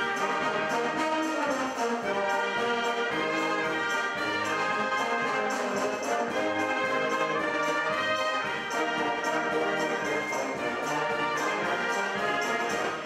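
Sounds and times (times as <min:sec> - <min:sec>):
brass band playing chords: 0:00.0 - 0:13.0.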